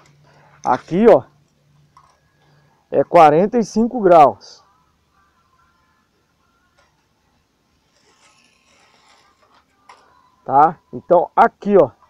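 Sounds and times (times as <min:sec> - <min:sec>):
faint scratchy rustle: 0:04.6 - 0:10.5.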